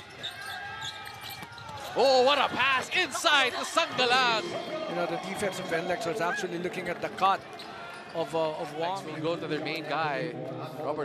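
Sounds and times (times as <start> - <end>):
sneakers squeaking on hardwood: 0.0 - 2.8
arena crowd noise: 0.0 - 11.0.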